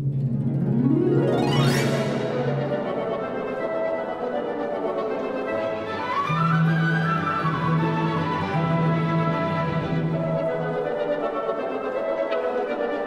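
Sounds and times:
orchestral music: 0.0 - 13.0.

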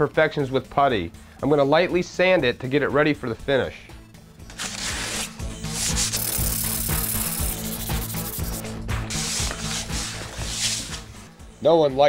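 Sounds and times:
sandpaper rubbing on wood: 4.6 - 11.2.

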